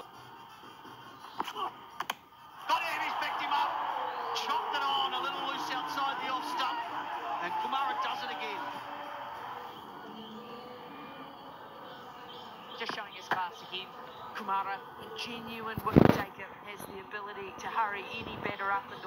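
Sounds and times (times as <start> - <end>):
crowd cheering and shouting: 2.5 - 12.1.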